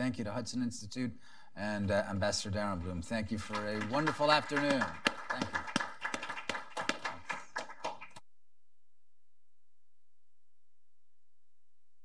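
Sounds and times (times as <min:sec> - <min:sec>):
small group applauding: 0:02.8 - 0:08.2.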